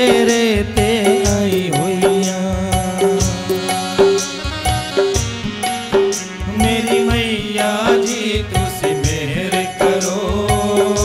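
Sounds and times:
hand drum beat: 0.0 - 9.4
sustained instrumental accompaniment: 0.0 - 11.0.

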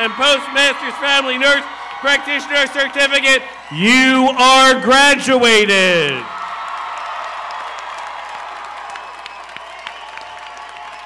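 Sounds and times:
crowd applause: 0.0 - 4.1, 5.9 - 11.0.

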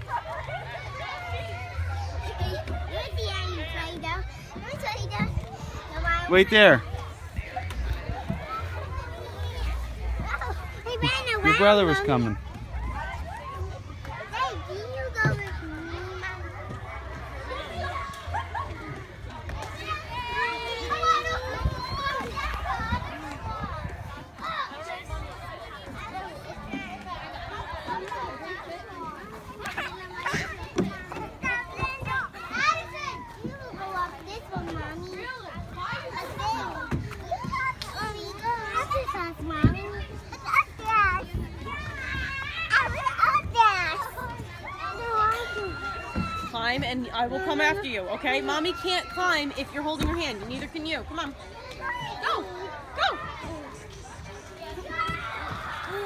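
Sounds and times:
children calling and chattering: 0.0 - 56.0.

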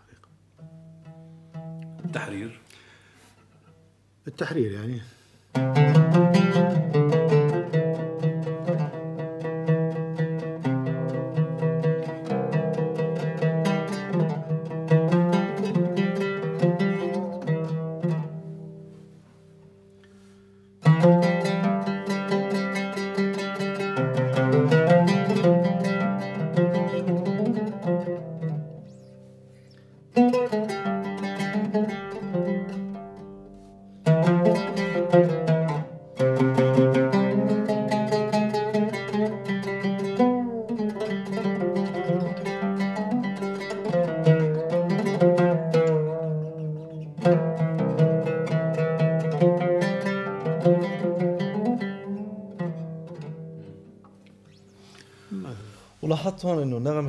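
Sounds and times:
solo oud improvising: 0.0 - 4.0, 5.5 - 56.6.

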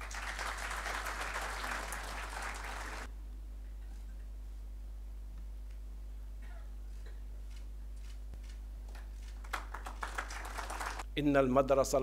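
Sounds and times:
hands clapping: 0.0 - 3.1, 8.9 - 11.0
low electrical hum: 0.0 - 12.0.

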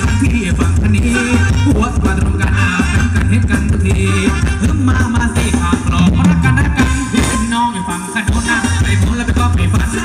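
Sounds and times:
heavy bass line: 0.0 - 10.0
live band dance music: 0.0 - 10.0.

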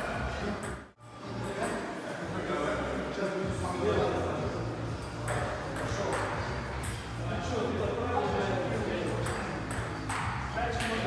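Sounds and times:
indistinct voices in a hall: 0.0 - 11.0.

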